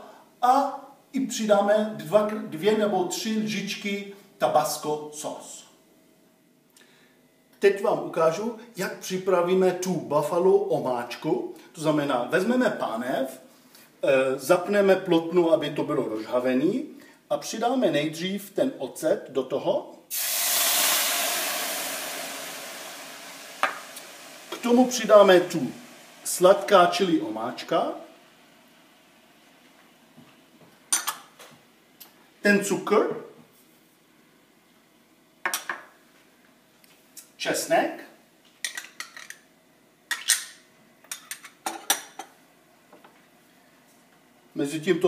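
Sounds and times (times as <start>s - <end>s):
vinegar sizzling in frying pan: 20.1s - 28.6s.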